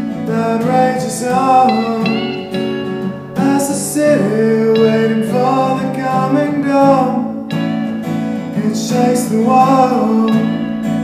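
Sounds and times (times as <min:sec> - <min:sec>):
acoustic guitar playing: 0:00.0 - 0:11.0
man singing: 0:00.1 - 0:07.5, 0:08.4 - 0:11.0.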